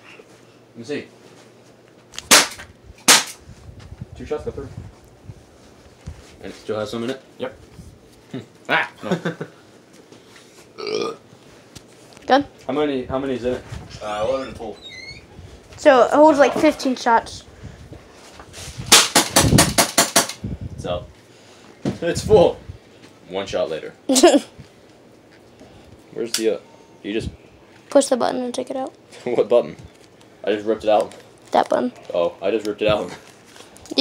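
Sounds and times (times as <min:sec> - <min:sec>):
silenced airsoft pistol shots: 0:02.3 - 0:03.4, 0:18.9 - 0:20.4.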